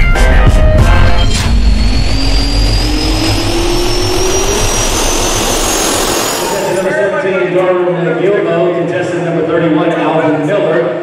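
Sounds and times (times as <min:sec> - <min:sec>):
jet engine spooling up: 0:00.6 - 0:07.6.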